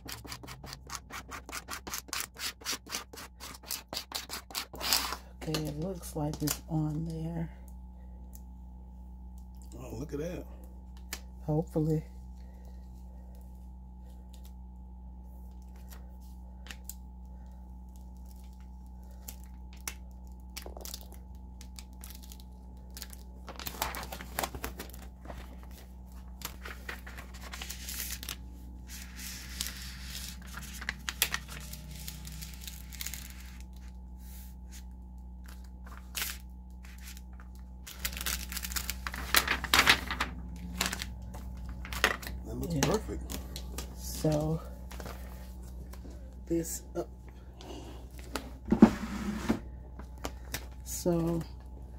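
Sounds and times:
paper rubbing: 0:00.0 - 0:05.3, 0:26.5 - 0:34.8
transfer paper peeling: 0:21.7 - 0:33.8, 0:35.5 - 0:44.3.

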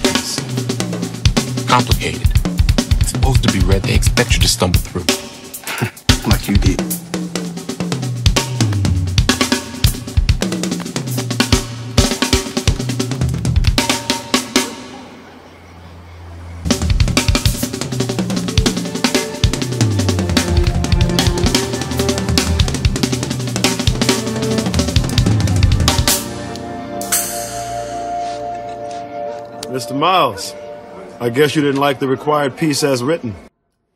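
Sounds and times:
fast drum kit playing: 0:00.0 - 0:15.0, 0:16.7 - 0:28.0.

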